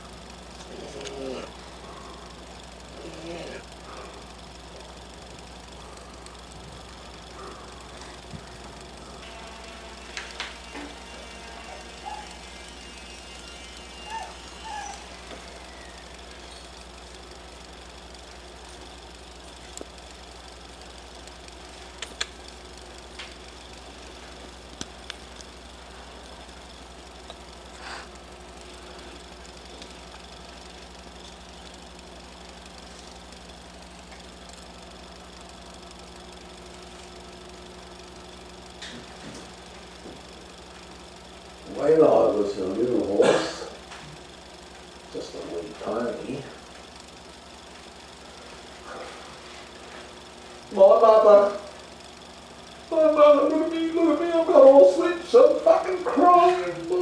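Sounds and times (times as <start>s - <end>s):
steady low hum: 0.0s - 57.0s
faint sharp clicks: 21.8s - 22.6s.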